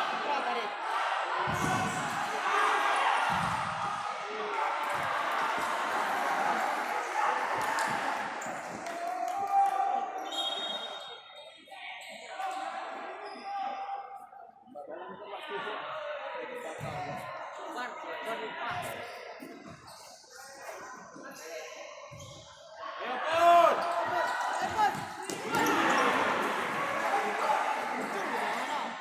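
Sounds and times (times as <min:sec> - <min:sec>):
ball bouncing on court: 0:03.3 - 0:03.6, 0:24.6 - 0:26.0
shoes squeaking on floor: 0:18.7 - 0:21.5
people shouting: 0:22.9 - 0:28.3.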